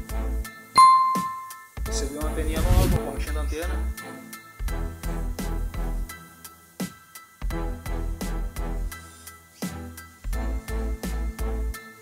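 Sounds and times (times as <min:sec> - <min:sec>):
bell ding notification: 0:00.8 - 0:01.7.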